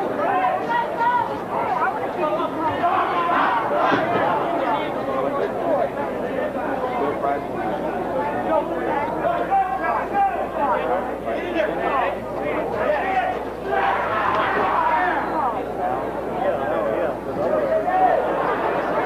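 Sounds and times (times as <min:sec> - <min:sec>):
crowd babble of many voices: 0:00.0 - 0:19.0.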